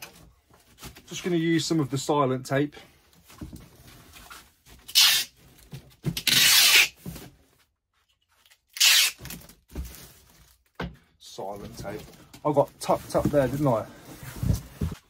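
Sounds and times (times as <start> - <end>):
parcel tape ripping off roll: 4.8 - 5.4, 6.2 - 7.0, 8.5 - 9.5.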